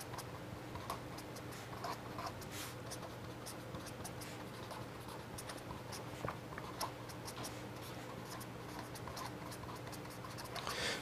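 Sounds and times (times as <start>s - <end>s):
marker pen writing on paper: 0.0s - 10.7s
steady low hum: 0.0s - 11.0s.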